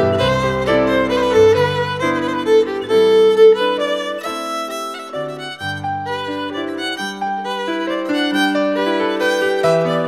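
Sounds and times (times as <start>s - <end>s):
fiddle playing a folk dance tune: 0.0s - 10.0s
piano accompaniment: 0.0s - 10.0s.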